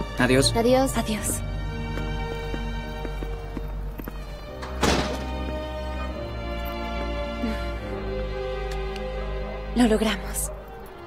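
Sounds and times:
soft background music: 0:00.0 - 0:11.0
thunk at a door: 0:04.6 - 0:05.6.

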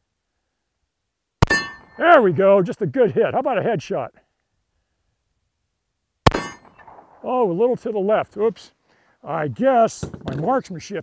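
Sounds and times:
pistol shot: 0:01.4 - 0:01.9, 0:06.2 - 0:07.2
steel target ringing: 0:01.4 - 0:02.0, 0:06.3 - 0:07.2.

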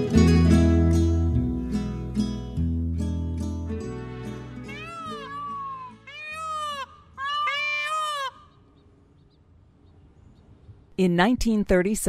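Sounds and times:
acoustic guitar music: 0:00.0 - 0:07.2
peacock calling: 0:04.7 - 0:09.9.

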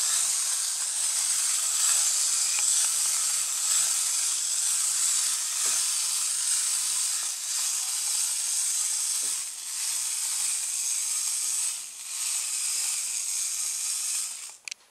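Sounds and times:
clockwork toy whirring: 0:00.0 - 0:14.8.

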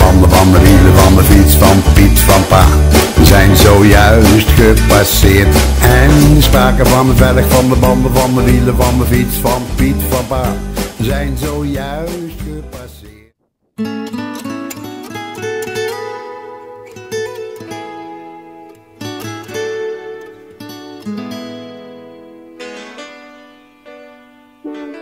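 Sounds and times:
plucked string instrument chords: 0:00.0 - 0:13.0, 0:13.8 - 0:25.0.

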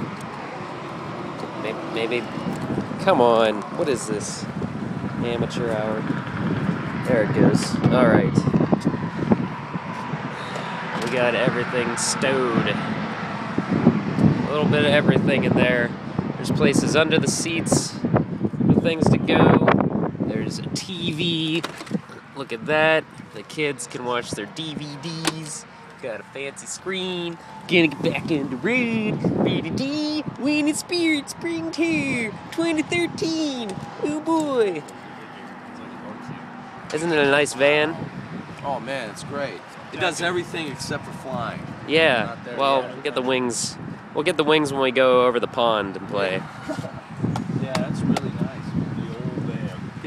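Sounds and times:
road traffic: 0:00.0 - 0:50.0.

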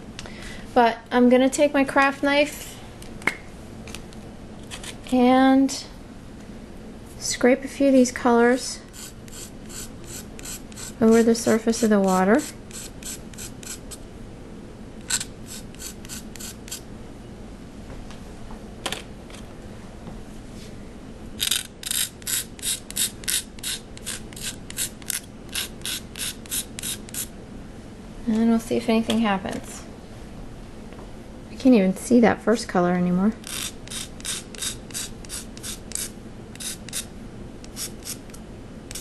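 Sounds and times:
knife blade scraping pastel stick: 0:08.9 - 0:11.3, 0:12.4 - 0:14.0, 0:15.0 - 0:16.8, 0:21.4 - 0:27.3, 0:33.4 - 0:37.1, 0:37.7 - 0:39.0.

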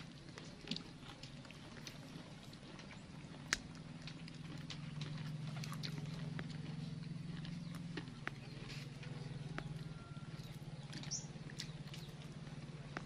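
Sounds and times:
chewing corn on the cob: 0:00.0 - 0:13.0
steady low hum: 0:00.0 - 0:13.0.

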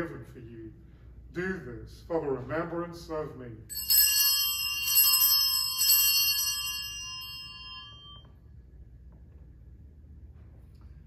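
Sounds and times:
altar bell ringing: 0:03.7 - 0:08.4.

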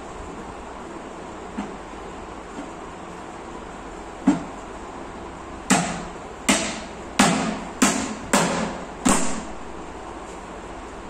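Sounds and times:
sharp knocks on board panel: 0:04.2 - 0:04.5, 0:05.7 - 0:09.5.

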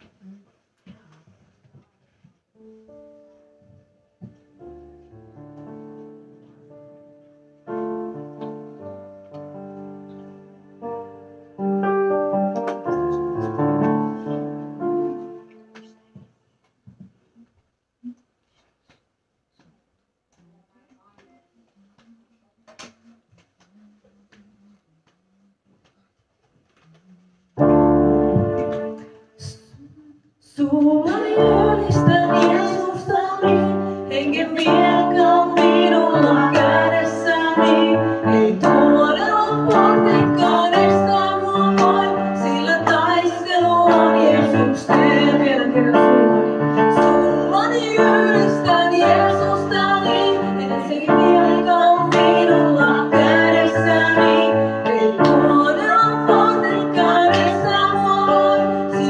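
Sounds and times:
keyboard playing chords: 0:04.7 - 0:15.6, 0:27.6 - 0:29.2
person singing: 0:26.8 - 0:59.0.

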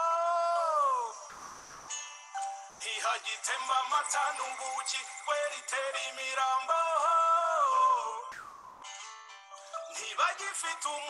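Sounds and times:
pop song with male singer: 0:00.0 - 0:01.4, 0:02.7 - 0:08.4, 0:09.8 - 0:11.0.

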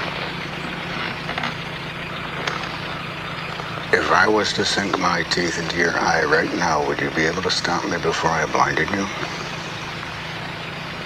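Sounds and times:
low hum: 0:00.0 - 0:11.0
rumbling noise: 0:00.0 - 0:11.0.

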